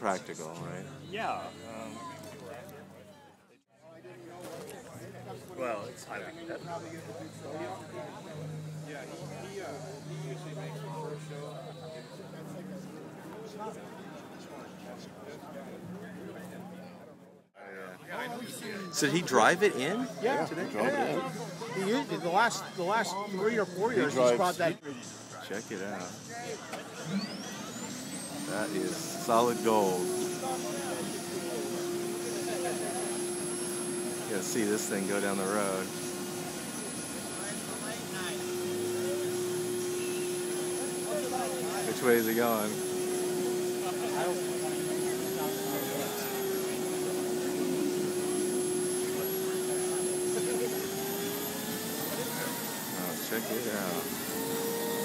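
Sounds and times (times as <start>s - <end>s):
crowd voices: 0.0s - 55.0s
turbine engine whine rising: 18.6s - 55.0s.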